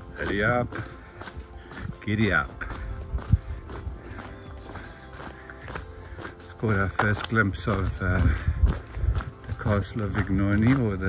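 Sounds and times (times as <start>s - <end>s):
background music: 0.0s - 11.0s
footsteps on gravel: 0.0s - 11.0s
trekking poles tapping: 0.0s - 11.0s.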